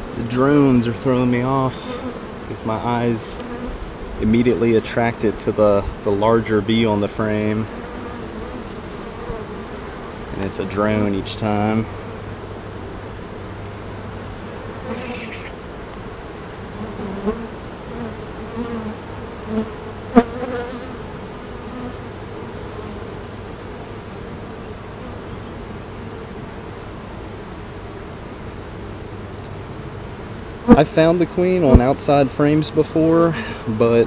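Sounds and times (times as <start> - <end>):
single bees buzzing past: 0.0 - 33.8
bee colony humming: 0.0 - 34.0.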